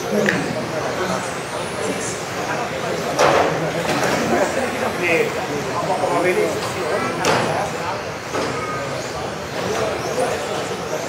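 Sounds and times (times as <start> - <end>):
echoing chatter of voices: 0.0 - 11.0.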